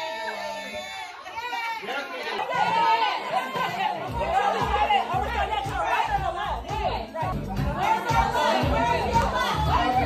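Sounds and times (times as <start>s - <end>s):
party crowd chattering: 0.0s - 10.0s
music: 3.2s - 10.0s
heavy bass beat: 3.4s - 10.0s.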